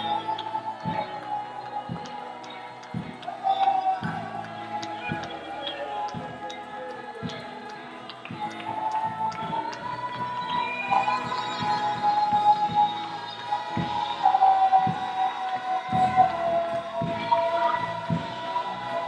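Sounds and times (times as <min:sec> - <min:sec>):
person singing long sliding notes: 0:00.0 - 0:19.0.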